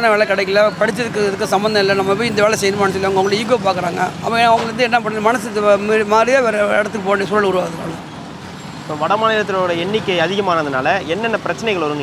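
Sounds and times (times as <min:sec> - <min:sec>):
man speaking: 0:00.0 - 0:08.0
street traffic noise: 0:00.0 - 0:12.0.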